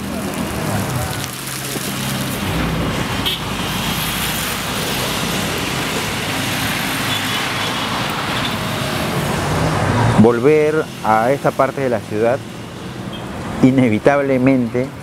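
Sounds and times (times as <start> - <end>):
road traffic passing: 0.0 - 15.0.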